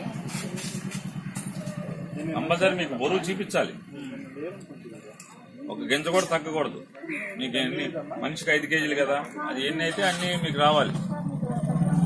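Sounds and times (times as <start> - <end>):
auto-rickshaw engine idling: 0.0 - 12.0.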